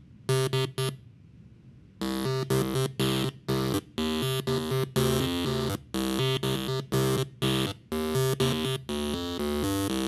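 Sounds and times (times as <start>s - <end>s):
solenoid valves buzzing a tune: 0.3s - 1.0s, 2.0s - 10.0s.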